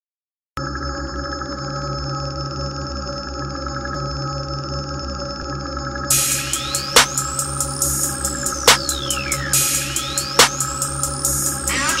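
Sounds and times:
electronic ringing drone: 0:00.6 - 0:12.0.

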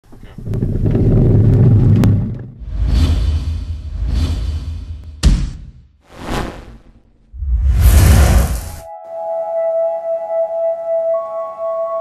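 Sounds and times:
deep rumbling sound effect: 0:07.3 - 0:08.8.

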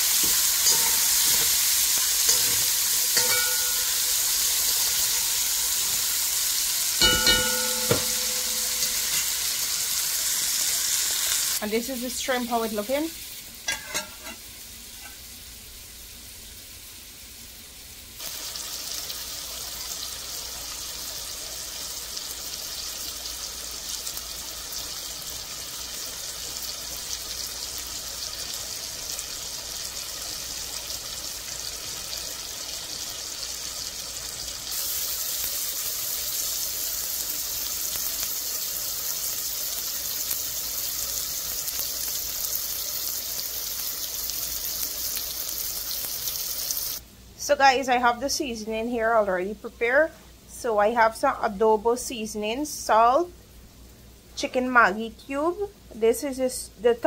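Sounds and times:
vegetables sizzling in hot oil: 0:00.0 - 0:48.6.

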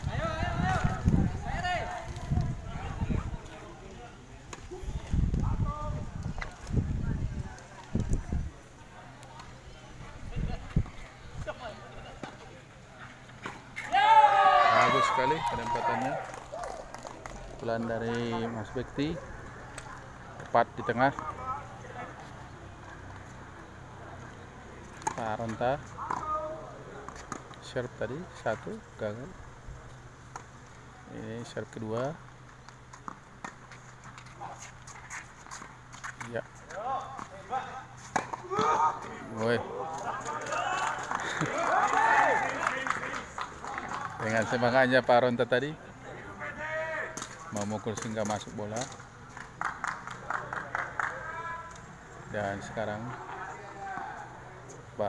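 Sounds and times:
background chatter: 0:00.0 - 0:55.0
players calling out: 0:11.5 - 0:27.9, 0:36.1 - 0:45.0.

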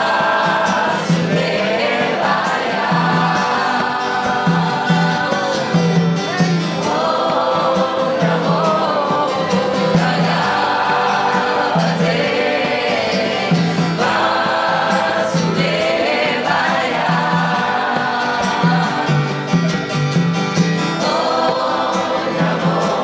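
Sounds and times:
strummed acoustic guitars: 0:00.0 - 0:23.0
voices singing a mantra together: 0:00.0 - 0:23.0.

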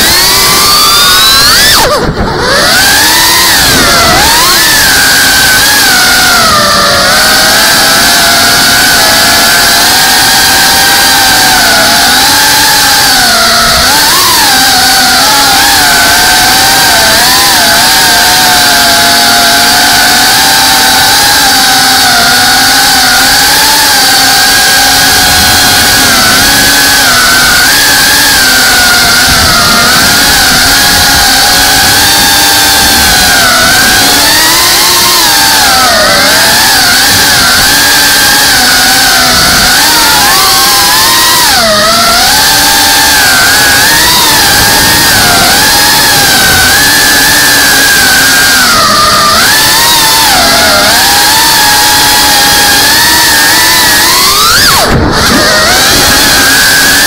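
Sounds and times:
drone motors and propellers whining: 0:00.0 - 0:57.0.

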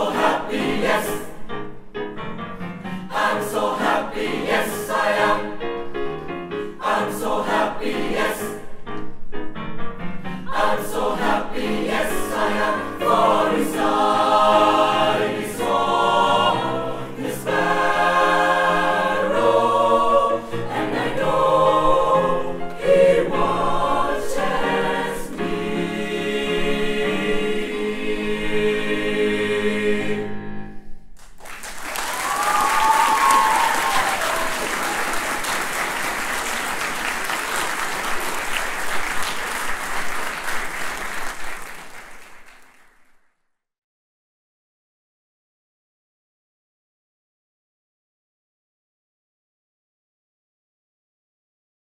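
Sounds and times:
mixed choir singing: 0:00.0 - 0:01.6, 0:03.0 - 0:05.9, 0:06.5 - 0:08.8, 0:10.4 - 0:30.6.

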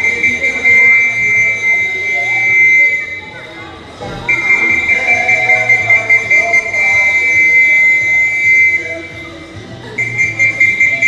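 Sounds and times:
long high whistle blast: 0:00.0 - 0:03.4.

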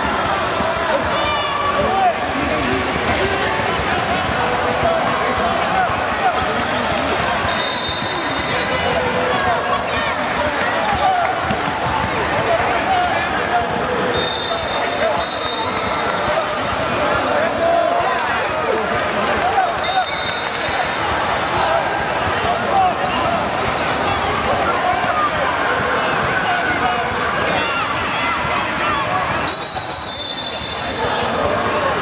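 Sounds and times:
hubbub of voices: 0:00.0 - 0:32.0.

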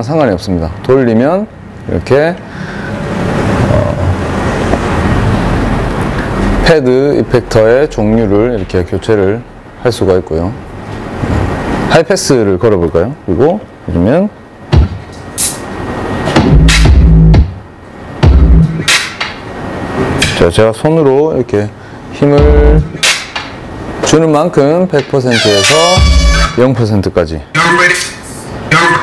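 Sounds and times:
electronic drum samples: 0:14.7 - 0:19.4, 0:20.1 - 0:20.5, 0:22.2 - 0:23.6, 0:25.0 - 0:26.6
dense rumble with low hum: 0:18.2 - 0:18.8, 0:22.4 - 0:23.0.

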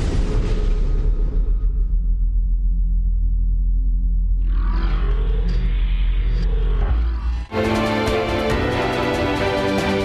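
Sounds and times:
deep rumbling drone: 0:00.0 - 0:10.0.

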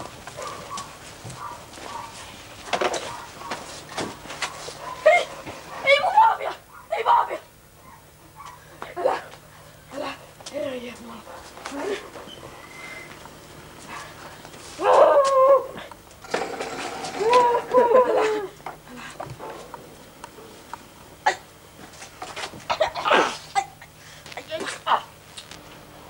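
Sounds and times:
person crying out wordlessly: 0:14.8 - 0:15.9.

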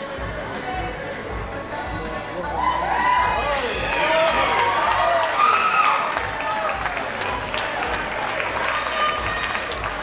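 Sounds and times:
crowd shouting: 0:02.6 - 0:09.7
crowd applause: 0:03.5 - 0:10.0.

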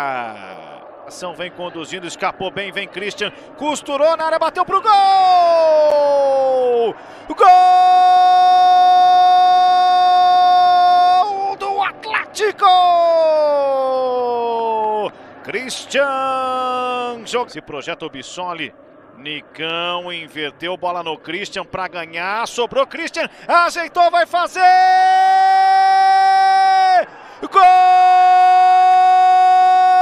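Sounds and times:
commentator shouting goal: 0:04.0 - 0:15.1, 0:23.5 - 0:30.0.

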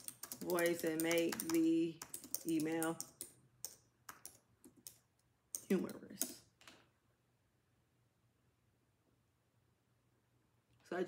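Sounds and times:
computer keyboard clicks: 0:00.0 - 0:06.4.

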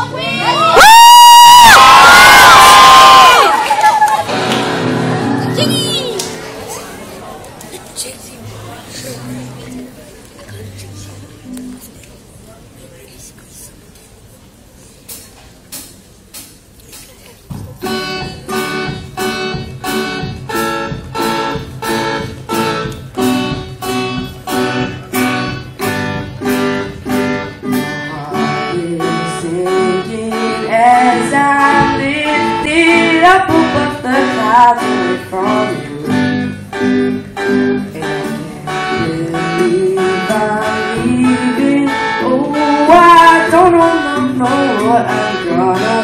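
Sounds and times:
acoustic guitars strumming chords: 0:04.2 - 0:07.3, 0:17.8 - 0:46.0.

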